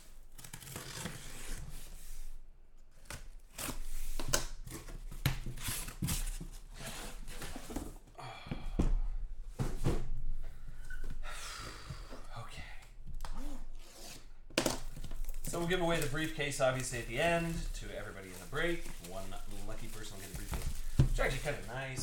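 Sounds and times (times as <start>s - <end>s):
plastic wrap tearing and crinkling: 0.0s - 1.6s, 14.7s - 22.0s
cardboard flaps scraping and knocking: 3.8s - 8.1s, 17.1s - 22.0s.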